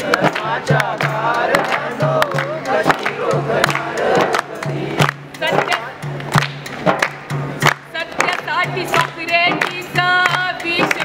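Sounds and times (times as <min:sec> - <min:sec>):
group singing a protest song: 0:00.0 - 0:06.0
hand clapping: 0:00.0 - 0:11.0
percussive beat: 0:00.0 - 0:11.0.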